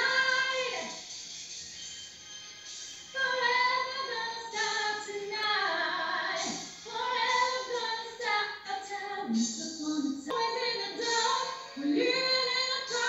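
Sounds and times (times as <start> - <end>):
woman singing through laptop speaker: 0.0 - 1.1, 3.1 - 13.0.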